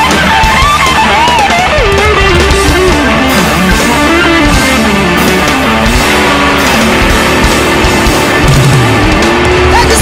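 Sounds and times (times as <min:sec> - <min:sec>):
bass guitar: 0:00.0 - 0:10.0
drums: 0:00.0 - 0:10.0
lap steel guitar solo: 0:00.0 - 0:10.0.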